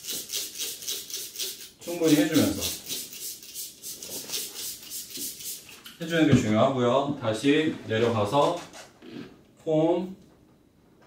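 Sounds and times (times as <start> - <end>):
spray bottle hissing sprays: 0.0 - 5.9.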